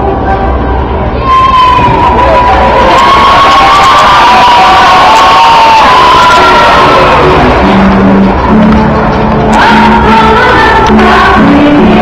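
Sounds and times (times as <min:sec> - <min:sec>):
children cheering and shouting: 0:01.2 - 0:08.6.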